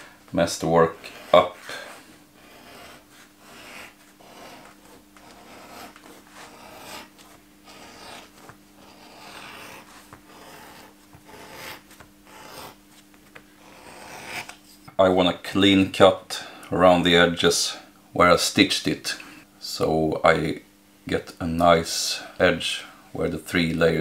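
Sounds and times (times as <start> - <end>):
beveler scraping leather: 0.9 - 12.8.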